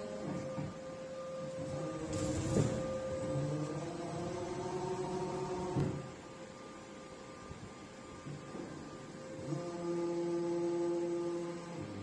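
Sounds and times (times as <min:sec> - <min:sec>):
electrical hum: 0:00.0 - 0:12.0
hydraulic pump humming whine: 0:00.0 - 0:12.0.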